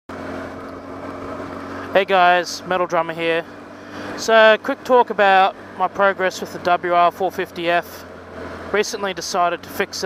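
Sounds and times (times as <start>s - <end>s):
motorcycle engine running: 0.1s - 10.0s
man's voice: 4.2s - 8.0s, 8.8s - 10.0s.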